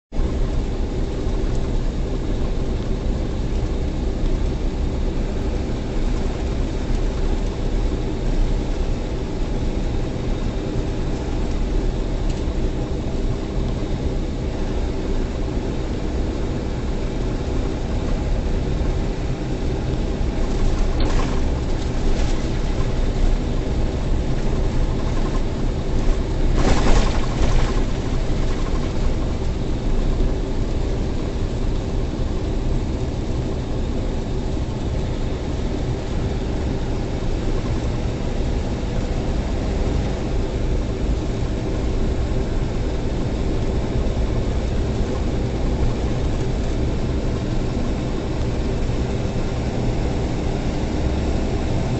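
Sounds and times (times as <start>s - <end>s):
diesel truck engine running: 9.2s - 51.3s
tyre and road noise: 19.7s - 30.2s.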